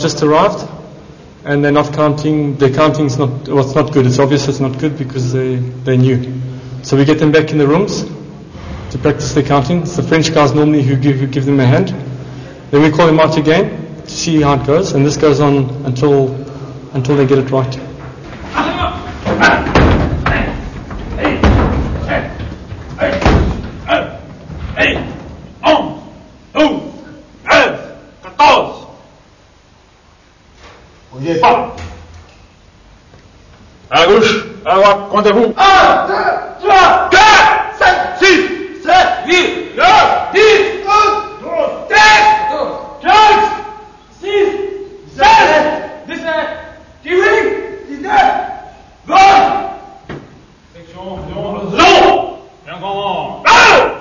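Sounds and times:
men's voices: 0:01.5 - 0:28.9
doors slamming: 0:17.9 - 0:26.0
men shouting numbers: 0:23.0 - 0:28.8, 0:35.5 - 0:50.0, 0:51.3 - 0:54.0.

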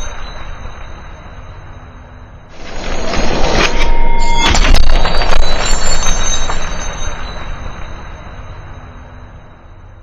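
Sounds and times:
high metallic ringing tones: 0:00.0 - 0:10.0.

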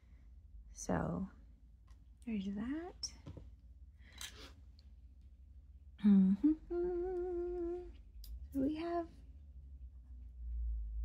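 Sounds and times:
woman humming: 0:06.0 - 0:08.0.

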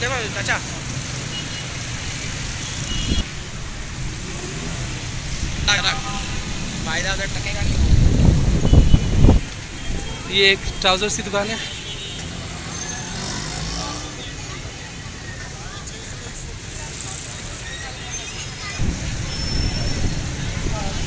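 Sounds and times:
street traffic rumble: 0:00.0 - 0:21.0
voices of passers-by: 0:00.0 - 0:21.0
vehicle passing close: 0:12.2 - 0:14.4.

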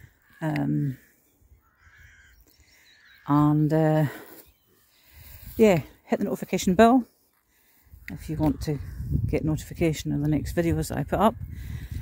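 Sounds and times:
faint bird calls: 0:00.0 - 0:05.2.

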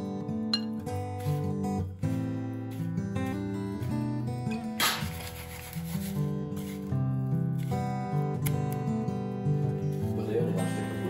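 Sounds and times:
dry scraping rustle of breadcrumbs: 0:05.0 - 0:07.9.

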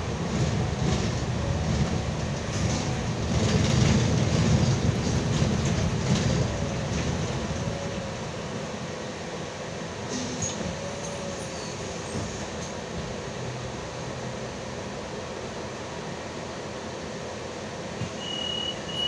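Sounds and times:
bus drivetrain and road rumble: 0:00.0 - 0:19.0.

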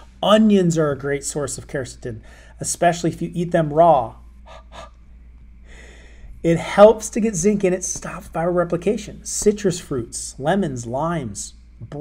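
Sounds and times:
low steady hum: 0:00.0 - 0:12.0
man breathing in: 0:02.2 - 0:02.6, 0:04.5 - 0:05.0, 0:05.6 - 0:06.4.

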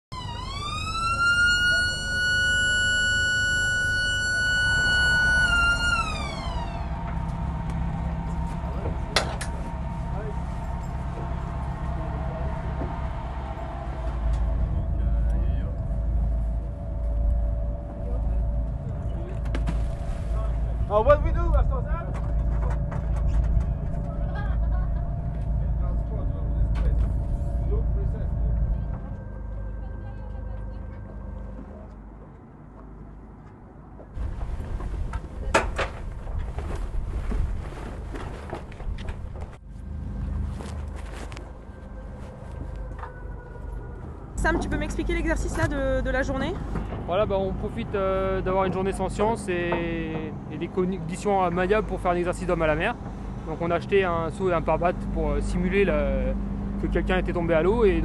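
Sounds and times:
electric alarm siren wailing: 0:00.1 - 0:08.7, 0:41.6 - 0:45.6
low rumble: 0:00.1 - 0:33.3, 0:34.0 - 0:58.0
boat mechanical hum: 0:00.1 - 0:58.0
wind rumble on microphone: 0:34.0 - 0:47.6.

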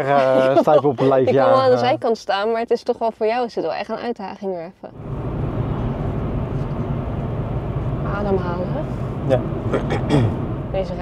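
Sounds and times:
car engine and tyre noise: 0:05.0 - 0:11.0.

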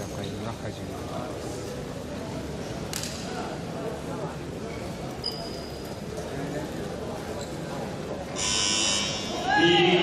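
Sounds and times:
sports hall murmur: 0:00.0 - 0:10.0
buzzer: 0:08.4 - 0:09.3.

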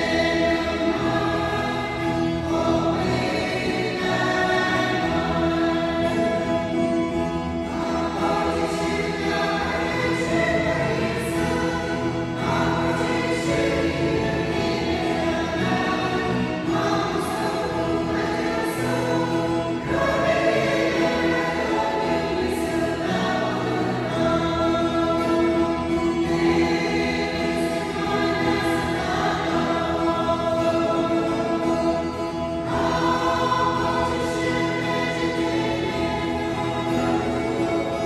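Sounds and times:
mixed choir singing a hymn: 0:00.0 - 0:38.0.

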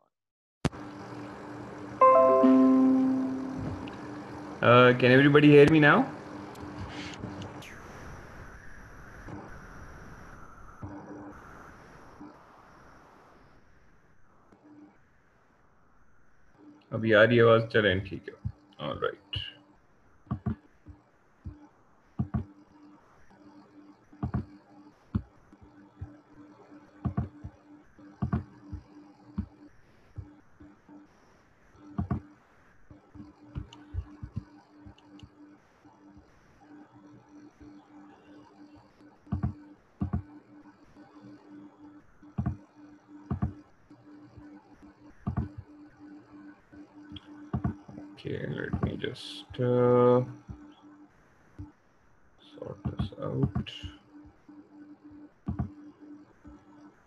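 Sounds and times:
faint steady hum: 0:00.7 - 0:57.0
bell-like chime: 0:02.0 - 0:03.6
click: 0:33.6 - 0:35.4, 0:47.1 - 0:47.8.

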